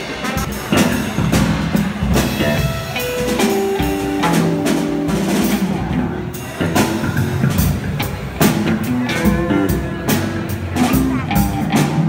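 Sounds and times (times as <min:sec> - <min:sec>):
drum and cymbal hits: 0:00.0 - 0:12.0
electric guitars: 0:00.2 - 0:12.0.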